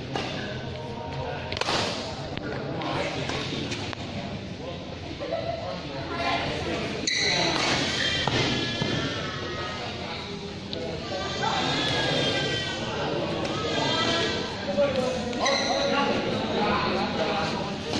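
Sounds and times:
people talking and calling: 0.0s - 17.9s.

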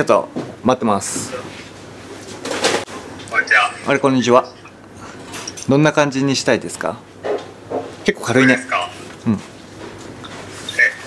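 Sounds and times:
person speaking: 3.2s - 4.8s, 8.2s - 9.4s
wordless vocal sounds: 3.3s - 4.6s.

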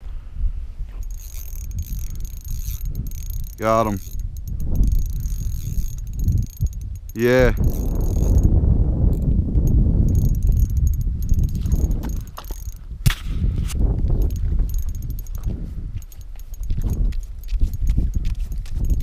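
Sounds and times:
spinning reel cranking: 1.0s - 8.5s, 9.1s - 12.8s, 14.1s - 19.0s
sharp click: 9.1s - 19.0s.

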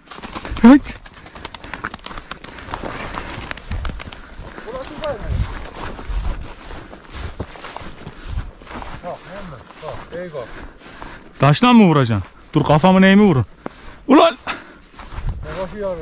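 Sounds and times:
footsteps on frosty grass: 2.4s - 16.0s.

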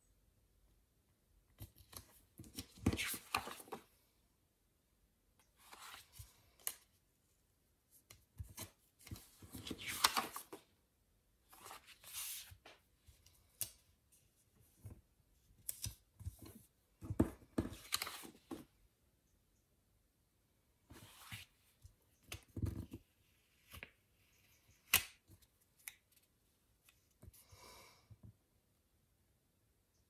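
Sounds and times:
paper rustling and crinkling: 8.4s - 10.6s.

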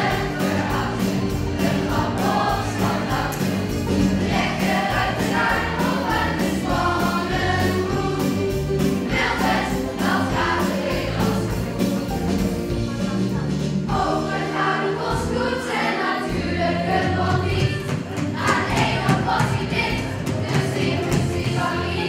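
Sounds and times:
children singing together: 0.0s - 12.1s, 12.9s - 22.0s
backing music with steady beat: 0.0s - 22.0s.

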